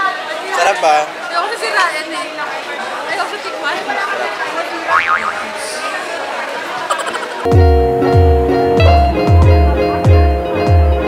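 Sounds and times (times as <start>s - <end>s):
crowd chatter: 0.0s - 10.8s.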